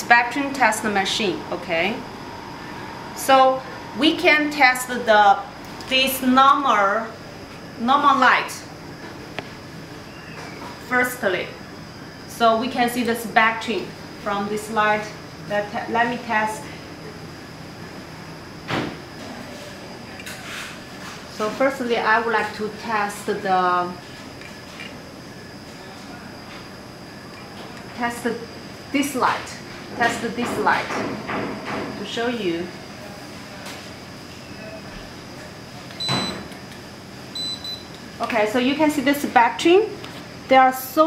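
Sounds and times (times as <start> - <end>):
faint high-pitched hum: 0.0 - 8.9
short high beep: 36.0 - 36.4.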